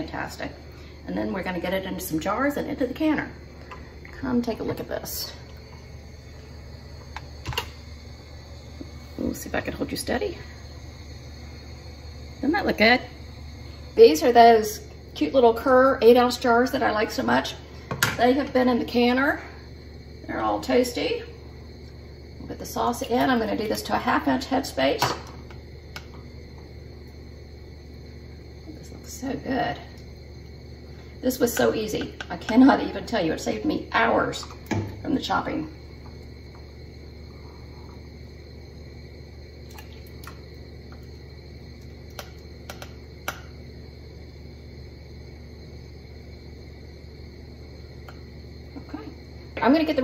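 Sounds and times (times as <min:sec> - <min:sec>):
steady low hum: 0:00.0 - 0:50.0.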